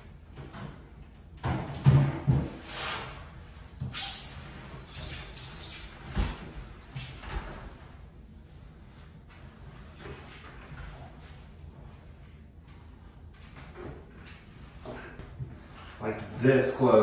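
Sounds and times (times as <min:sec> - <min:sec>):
heavy cabinet knocking and bumping: 0:01.4 - 0:02.6.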